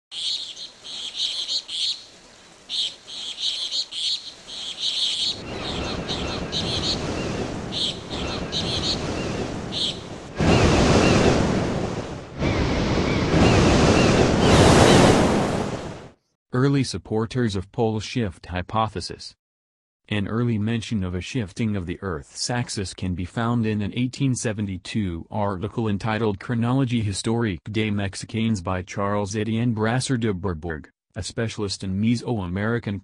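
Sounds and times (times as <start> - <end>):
birds chirping: 0.1 - 15.2
ocean surf rushing: 5.3 - 16.1
waves breaking: 5.3 - 16.1.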